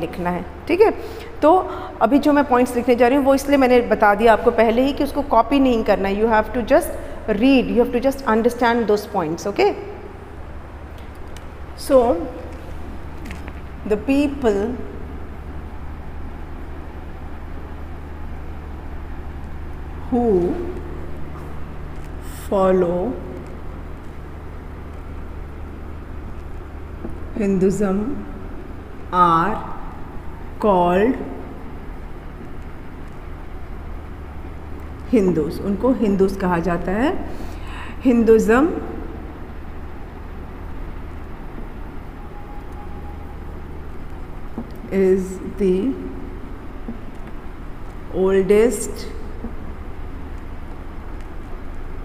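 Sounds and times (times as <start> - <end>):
low hum with light hiss: 0.0 - 52.0
low room rumble: 0.0 - 52.0.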